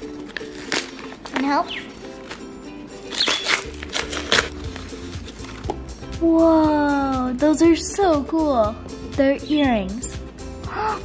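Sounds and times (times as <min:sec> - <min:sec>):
background music: 0:00.0 - 0:11.0
paper mailer tearing and rustling: 0:00.1 - 0:05.6
sharp paper crinkles: 0:00.1 - 0:05.6.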